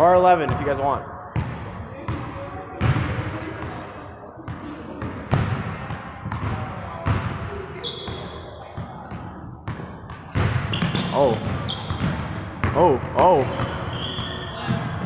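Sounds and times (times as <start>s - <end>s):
sneaker squeak on floor: 7.8s - 8.6s, 10.6s - 12.2s, 13.4s - 14.9s
basketball bouncing on hardwood floor: 8.8s - 12.9s.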